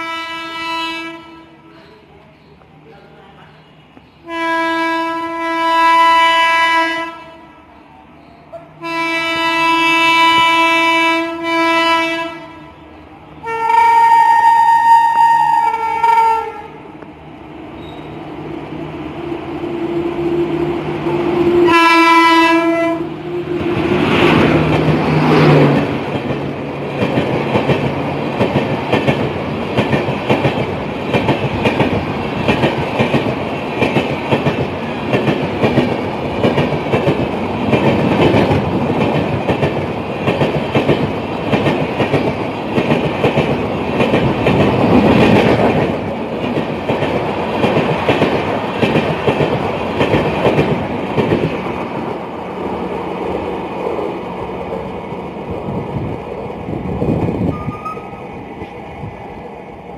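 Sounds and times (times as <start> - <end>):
locomotive horn: 0.0 - 1.6, 4.3 - 7.7, 8.8 - 12.8, 13.4 - 16.8, 21.4 - 23.6
train passing at speed: 0.0 - 59.9.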